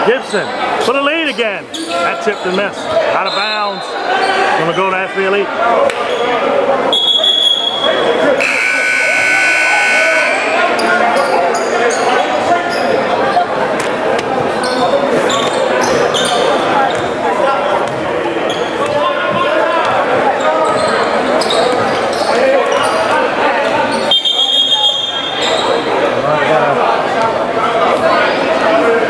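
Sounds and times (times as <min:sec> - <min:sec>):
crowd murmur: 0:00.0 - 0:29.0
sneakers squeaking: 0:01.2 - 0:05.0, 0:10.3 - 0:26.0
gym buzzer: 0:08.4 - 0:10.6.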